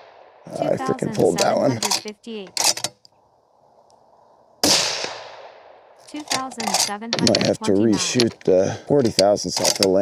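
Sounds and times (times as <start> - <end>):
rifle shot: 4.6 - 6.0.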